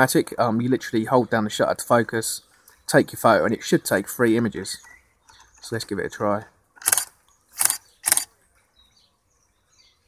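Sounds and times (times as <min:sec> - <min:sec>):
faint bird chirps: 0:04.6 - 0:05.8, 0:07.2 - 0:10.0
camera shutter and mirror firing: 0:06.8 - 0:08.3.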